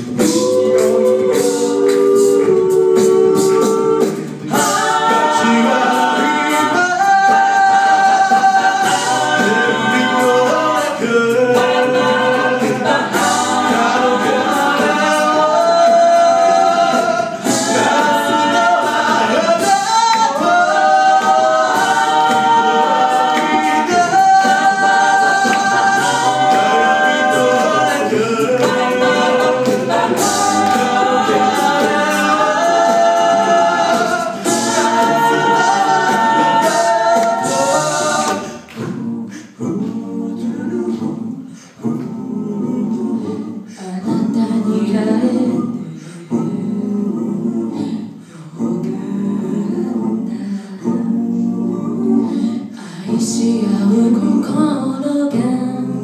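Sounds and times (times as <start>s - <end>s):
a cappella group singing: 0.0s - 56.0s.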